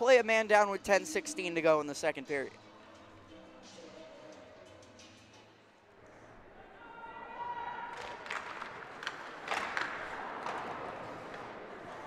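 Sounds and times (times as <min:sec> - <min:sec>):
crowd noise: 0:05.8 - 0:12.0
hockey sticks knocking puck and boards: 0:08.0 - 0:12.0
skates scraping ice: 0:08.0 - 0:12.0.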